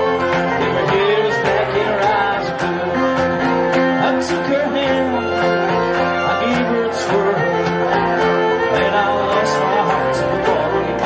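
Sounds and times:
fiddle melody: 0.0s - 11.0s
flute melody: 0.0s - 11.0s
strummed acoustic guitar: 0.0s - 11.0s.

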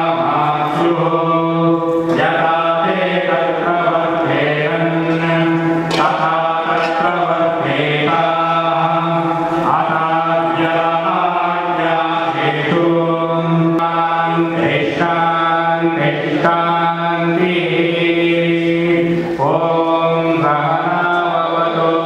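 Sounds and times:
voices chanting: 0.0s - 22.0s.

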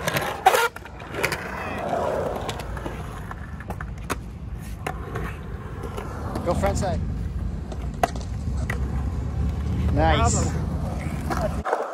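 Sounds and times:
skateboard wheels rolling on concrete: 0.0s - 11.9s.

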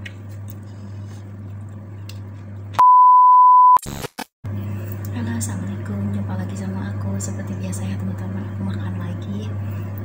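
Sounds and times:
low steady hum: 0.0s - 3.7s, 4.5s - 10.0s
loud electronic beep: 2.8s - 3.8s
crackling bursts: 3.8s - 4.3s.

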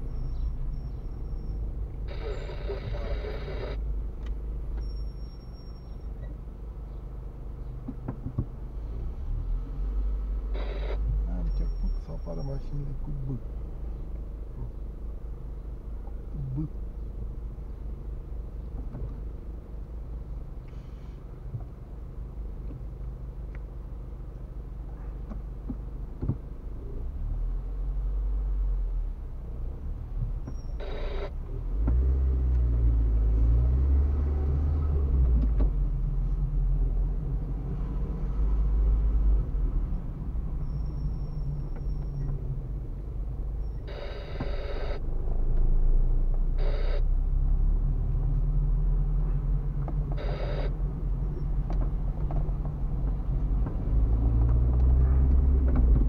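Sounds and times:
car engine and road noise: 0.0s - 56.0s
noise burst: 2.1s - 3.8s, 10.6s - 11.1s, 30.8s - 31.3s, 43.8s - 45.0s, 46.5s - 47.1s, 50.2s - 50.8s.

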